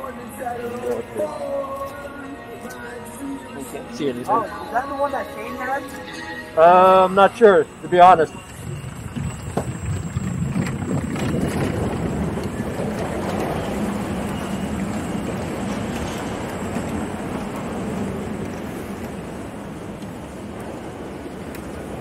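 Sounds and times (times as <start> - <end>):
wheels rumbling on wooden planks: 7.8 - 22.0
wind on microphone: 8.6 - 22.0.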